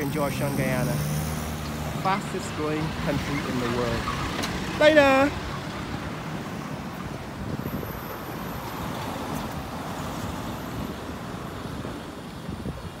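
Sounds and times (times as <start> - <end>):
street traffic noise: 0.0 - 13.0.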